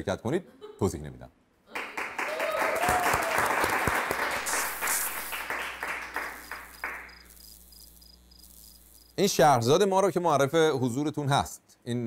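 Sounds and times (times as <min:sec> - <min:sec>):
applause: 0:01.7 - 0:07.2.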